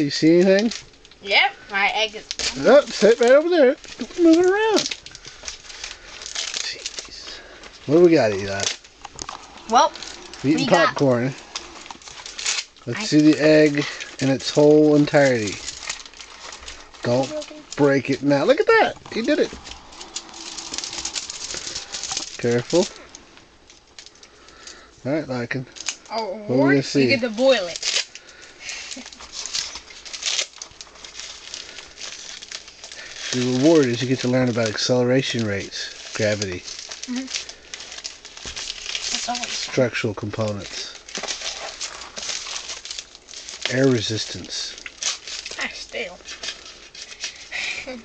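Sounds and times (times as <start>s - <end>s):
man speaking: 0.0s - 0.7s, 2.6s - 4.9s, 6.6s - 8.7s, 10.4s - 11.5s, 12.8s - 15.6s, 17.0s - 19.6s, 22.4s - 23.0s, 25.0s - 25.7s, 26.5s - 27.2s, 33.4s - 36.6s, 39.6s - 40.9s, 43.7s - 44.8s
packing material and cardboard crackling: 0.0s - 48.0s
wrapping rustling and crumpling: 0.0s - 48.0s.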